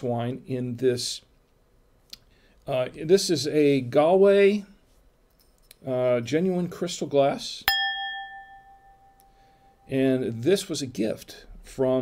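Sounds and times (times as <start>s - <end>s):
crystal wine glass ringing: 7.7s - 10.0s.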